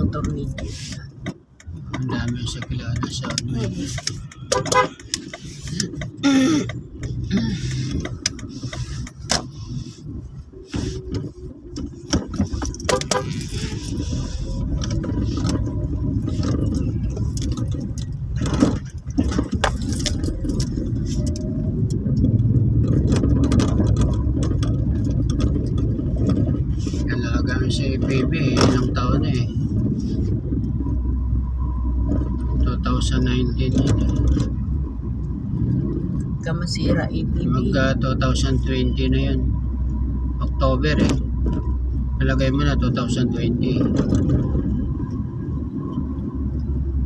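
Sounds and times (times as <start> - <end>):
car engine and road rumble: 0.0 - 47.0
sharp clicks and rattles: 0.0 - 47.0.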